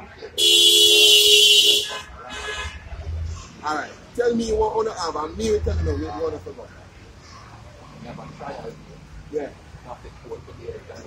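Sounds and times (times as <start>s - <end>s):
vehicle horn blast: 0.4s - 2.8s.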